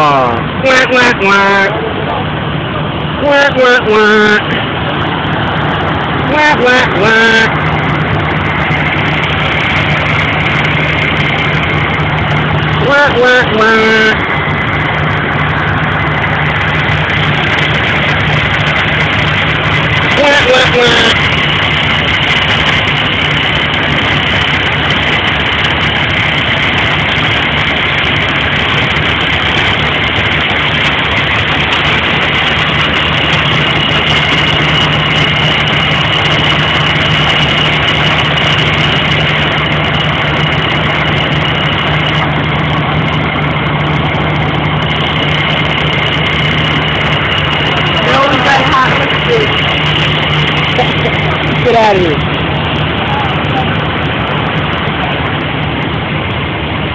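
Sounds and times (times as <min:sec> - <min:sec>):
vehicle engine idling: 0:00.0 - 0:56.9.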